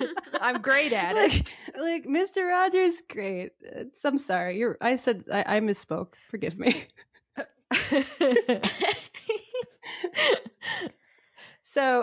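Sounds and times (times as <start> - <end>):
women laughing: 0.0 - 1.6, 7.7 - 11.0.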